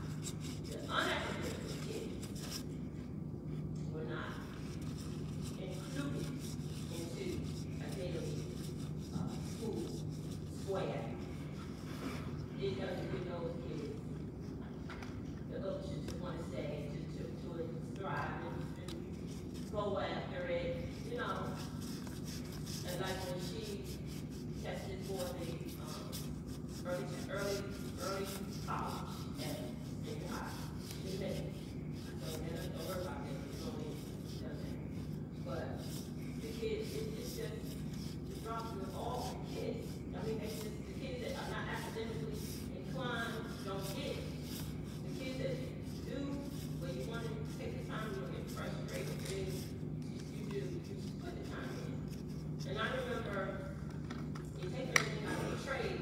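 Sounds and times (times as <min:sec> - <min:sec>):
woman speaking into a microphone: 0:00.0 - 0:02.6, 0:03.7 - 0:11.4, 0:12.4 - 0:56.0
steady low hum: 0:00.0 - 0:56.0.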